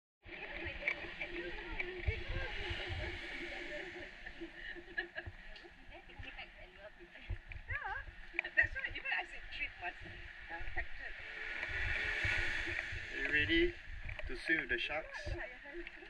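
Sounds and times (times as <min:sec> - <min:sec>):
people talking indistinctly: 0:00.2 - 0:16.0
steady outdoor hiss: 0:00.2 - 0:16.0.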